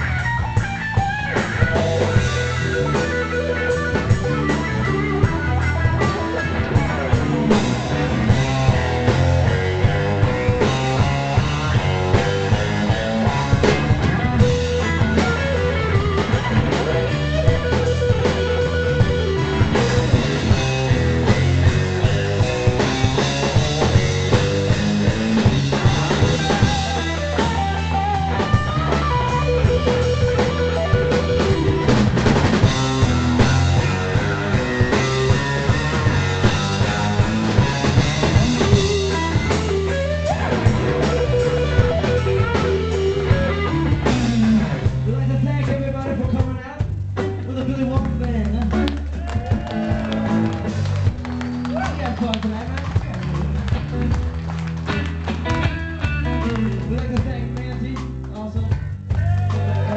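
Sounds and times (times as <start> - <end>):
drum kit steady beat: 0.0 - 59.9
electric bass: 0.0 - 59.9
electric guitar: 0.0 - 59.9.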